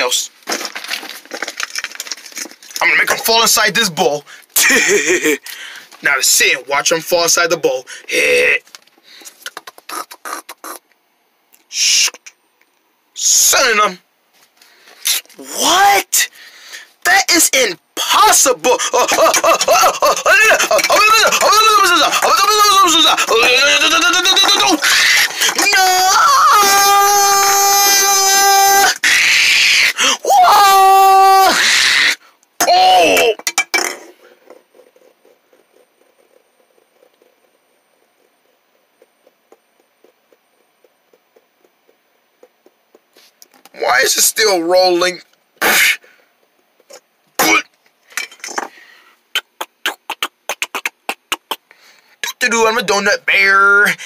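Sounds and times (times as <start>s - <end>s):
person yelling: 15.4s - 16.3s, 17.1s - 33.4s.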